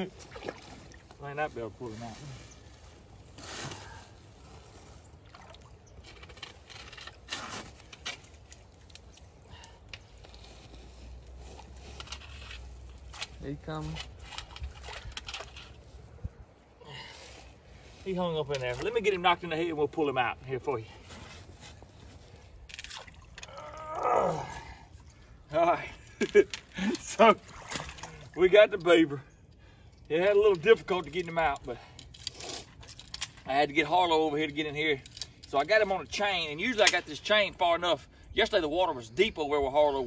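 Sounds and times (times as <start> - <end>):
shallow water splashing: 0.0 - 1.3, 4.5 - 6.0, 27.4 - 28.4
water sloshing and splashing: 0.0 - 16.2, 21.4 - 24.1, 26.4 - 28.7.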